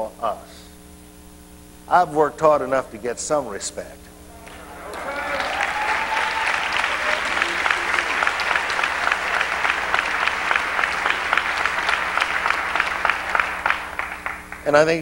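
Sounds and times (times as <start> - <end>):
congregation clapping: 4.3 - 15.0.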